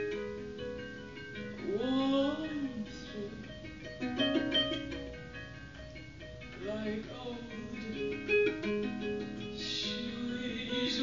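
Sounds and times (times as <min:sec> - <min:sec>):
plucked harp notes: 0:00.0 - 0:11.0
woman singing: 0:01.6 - 0:03.6, 0:06.6 - 0:08.7, 0:09.5 - 0:11.0.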